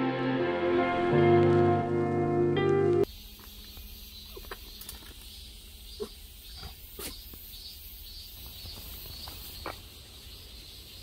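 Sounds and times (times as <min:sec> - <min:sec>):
crickets chirping: 0:03.0 - 0:11.0.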